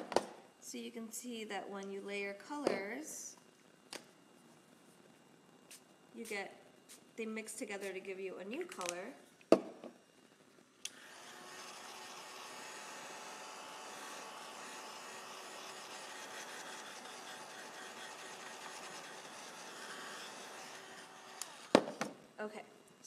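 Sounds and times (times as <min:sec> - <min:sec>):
heat gun blowing with faint whine: 0:02.2 - 0:23.0.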